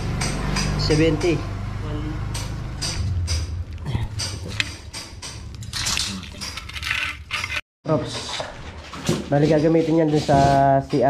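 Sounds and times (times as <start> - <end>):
steel bars knocking and clinking: 2.3 - 7.6.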